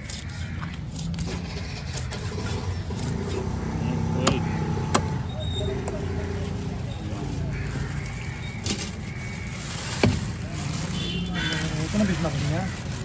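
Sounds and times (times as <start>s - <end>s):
market voices: 0.0s - 13.0s.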